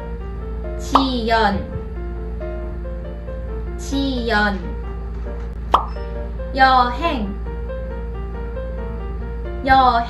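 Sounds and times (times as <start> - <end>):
light background music: 0.0 - 10.0
woman speaking: 0.8 - 1.8, 3.8 - 4.7, 6.5 - 7.4, 9.6 - 10.0
sharp pop sound effect: 0.9 - 1.1, 5.7 - 6.0.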